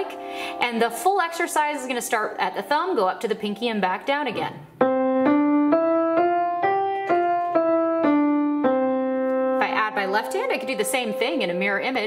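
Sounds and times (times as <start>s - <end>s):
piano playing a scale: 0.0s - 2.5s, 4.2s - 12.0s
person speaking: 0.0s - 4.7s, 9.6s - 12.0s.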